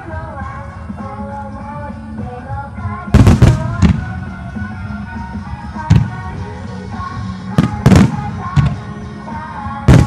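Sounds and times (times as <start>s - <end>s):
music playing: 0.0s - 10.0s
fireworks bangs: 3.1s - 4.4s, 5.8s - 6.4s, 7.5s - 9.0s.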